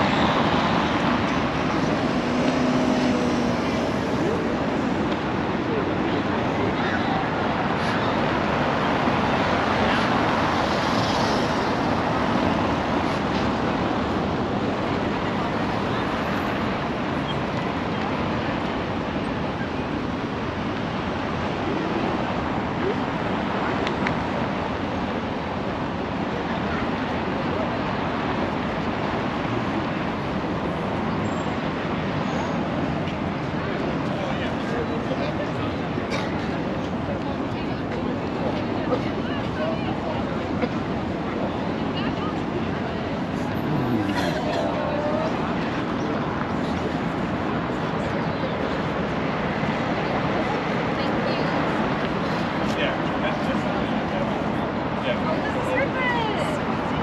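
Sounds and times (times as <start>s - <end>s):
crowd voices: 0.0s - 31.2s, 31.9s - 57.0s
traffic on cobbled road: 0.0s - 57.0s.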